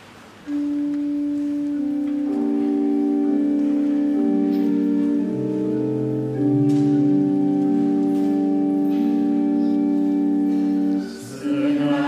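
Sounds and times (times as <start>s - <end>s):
organ playing held chords: 0.3s - 12.0s.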